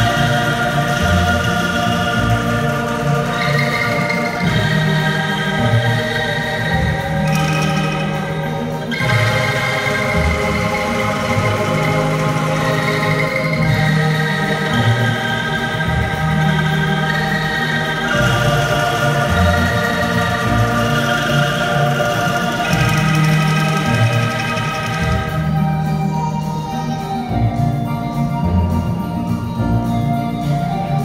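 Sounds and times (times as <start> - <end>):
angklung ensemble playing hymn: 0.0 - 31.0
low bass notes: 0.0 - 31.0.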